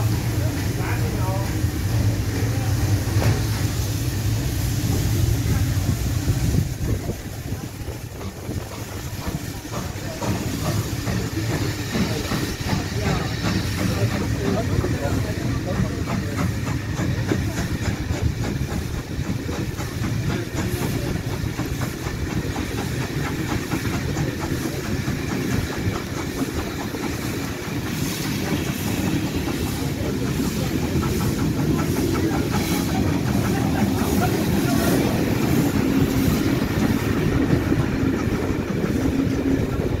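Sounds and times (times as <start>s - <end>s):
steam hissing: 0.0s - 40.0s
train wheels clattering over rail joints: 6.8s - 40.0s.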